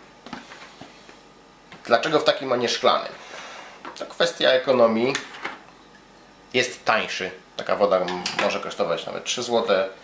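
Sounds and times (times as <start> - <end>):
man speaking: 1.8 - 3.2, 4.0 - 5.3, 6.5 - 10.0.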